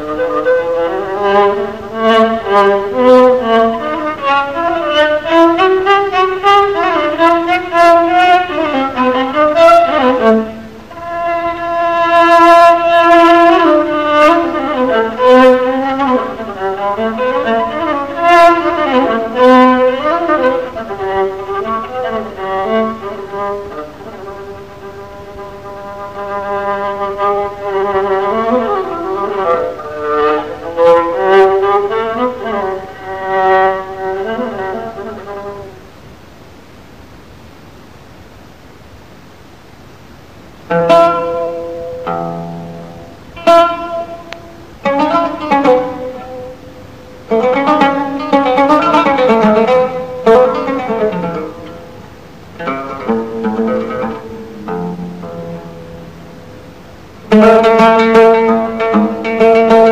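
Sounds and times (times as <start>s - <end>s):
bowed string instrument improvising: 0.0s - 35.9s, 40.6s - 59.9s
plucked string instrument phrases: 0.0s - 35.9s, 40.7s - 59.9s.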